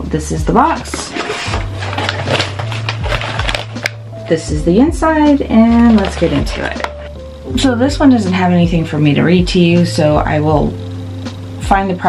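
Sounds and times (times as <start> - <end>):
background music: 0.0 - 12.0
cardboard box rustling: 0.9 - 3.8.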